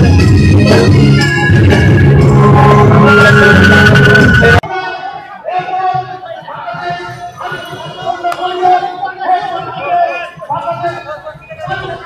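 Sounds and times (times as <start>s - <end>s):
crowd chatter: 0.8s - 12.0s
held pitched voices: 2.2s - 12.0s.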